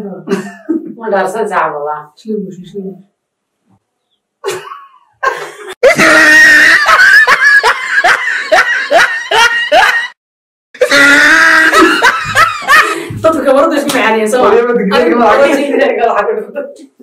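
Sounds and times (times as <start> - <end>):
people laughing hard: 4.5 - 10.2, 10.8 - 13.2
voices: 11.0 - 17.0.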